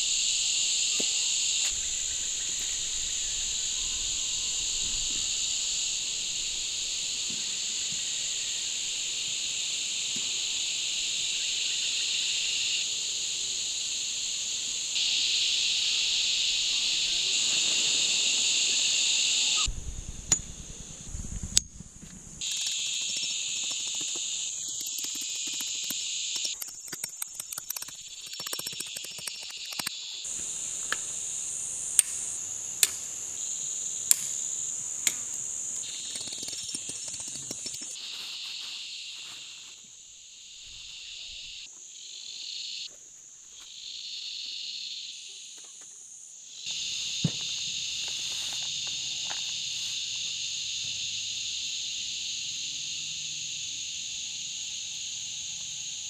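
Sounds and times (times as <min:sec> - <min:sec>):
insects chorus: 0:00.0 - 0:56.0
sharp clicks and knocks: 0:22.4 - 0:30.0.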